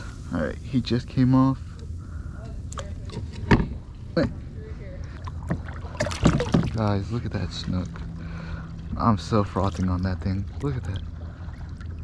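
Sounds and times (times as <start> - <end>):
water rumble: 0.0 - 12.0.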